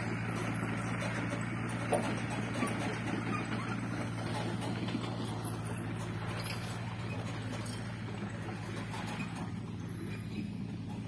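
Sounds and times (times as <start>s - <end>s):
engine humming steadily: 0.0s - 11.0s.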